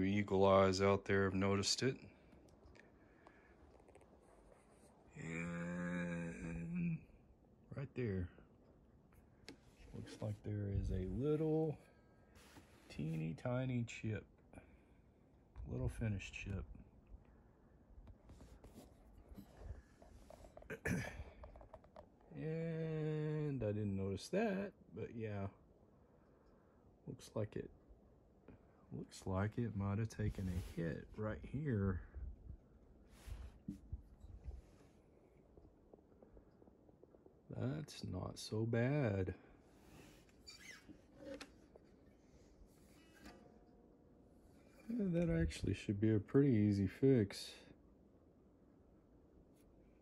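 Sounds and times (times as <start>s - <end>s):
murmured vocal sound: 5.1s - 7.2s
guitar handling rustles and taps: 39.8s - 43.8s.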